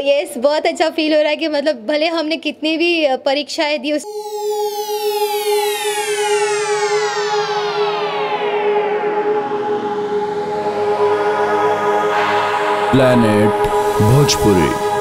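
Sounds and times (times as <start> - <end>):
synth sweep falling in pitch: 4.0 - 14.2
steady held synth tone: 4.0 - 15.0
sustained synth notes: 4.0 - 15.0.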